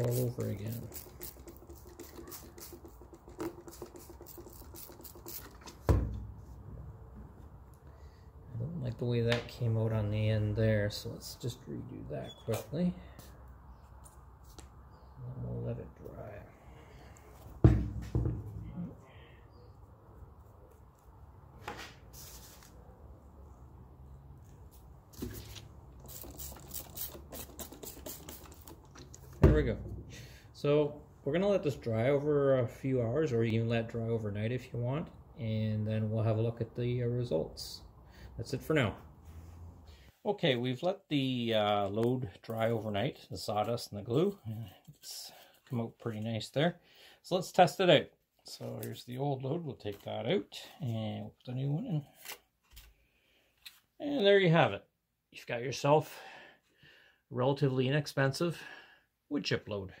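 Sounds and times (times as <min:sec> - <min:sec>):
spray bottle squirting: 0:00.0 - 0:05.9, 0:25.2 - 0:29.4
loud thump: 0:05.9 - 0:06.3, 0:17.6 - 0:18.8.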